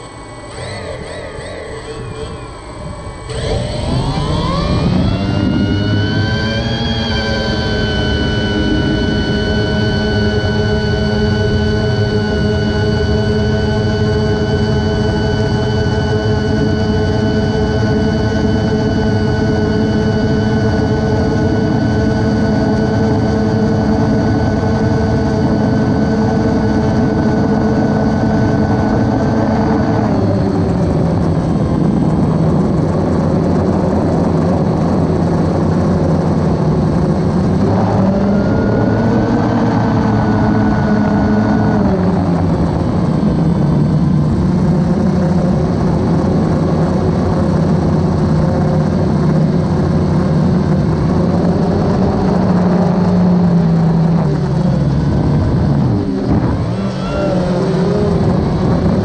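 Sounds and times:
drone motors and propellers whining: 0.0s - 59.0s.

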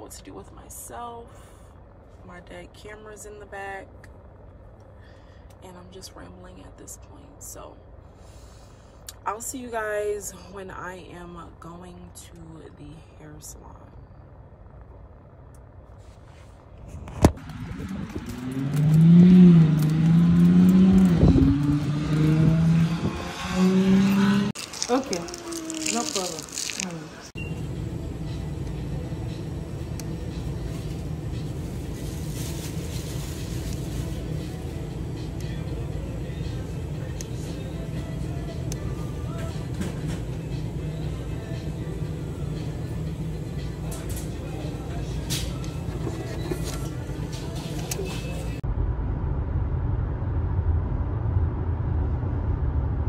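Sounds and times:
shop interior hum: 0.0s - 53.0s
vehicle engine running: 0.0s - 53.0s.

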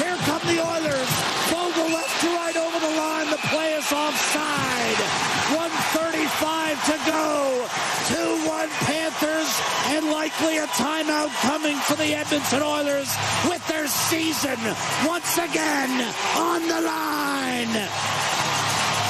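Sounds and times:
man commentating excitedly: 0.0s - 18.0s
arena crowd noise: 0.0s - 19.0s.

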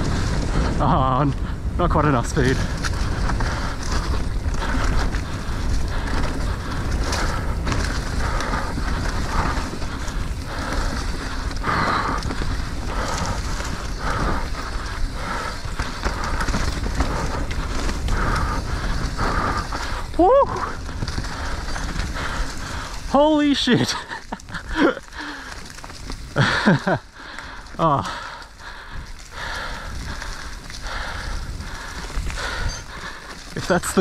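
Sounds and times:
bike tyres on dirt and leaves: 0.0s - 34.0s
wind rumble on microphone: 0.0s - 34.0s.

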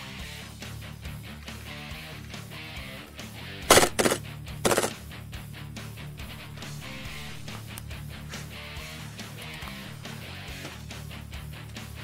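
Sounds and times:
airsoft gun full-auto bursts: 3.7s - 5.0s.

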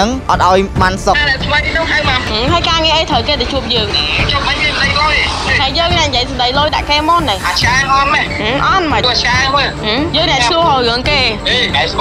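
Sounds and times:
men talking: 0.0s - 1.2s, 7.4s - 12.0s.

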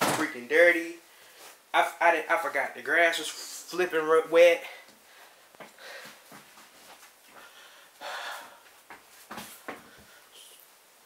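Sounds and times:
person breathing: 1.0s - 1.6s, 4.6s - 6.4s, 7.3s - 8.7s, 9.7s - 10.6s.

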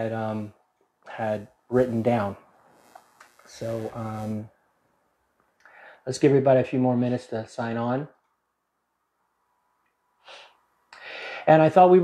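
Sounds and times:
person sniffing: 10.2s - 11.5s.

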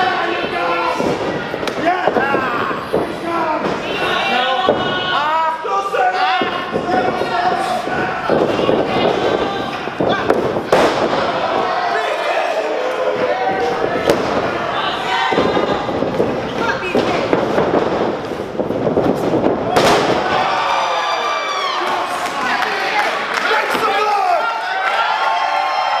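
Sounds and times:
wrestlers hitting the ring: 0.0s - 24.0s
crowd shouting and cheering: 0.0s - 26.0s.

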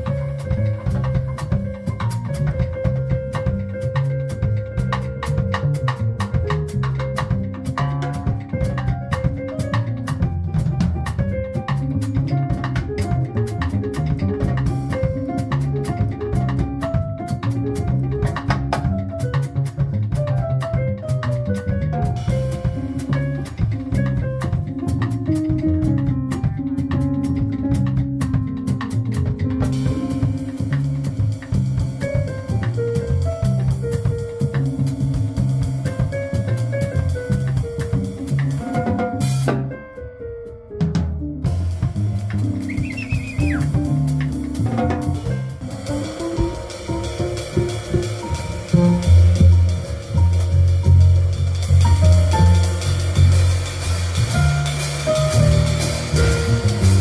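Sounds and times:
drum kit with cymbals: 0.0s - 57.0s
upright bass: 0.0s - 57.0s
keyboard melody: 37.8s - 53.2s
drum kit cymbal strokes: 41.5s - 57.0s.

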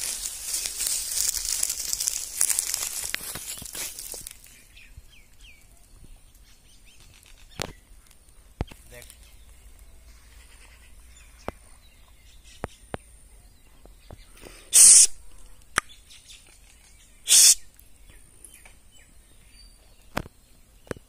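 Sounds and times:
harsh rasping bird calls: 8.7s - 13.1s, 14.1s - 18.2s.

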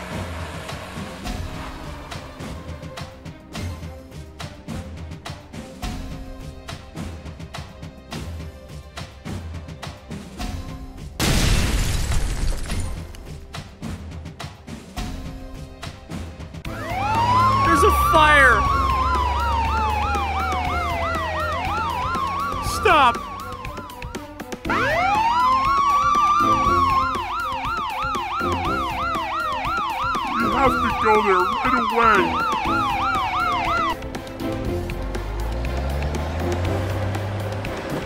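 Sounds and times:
police siren wailing and yelping: 16.7s - 34.0s.

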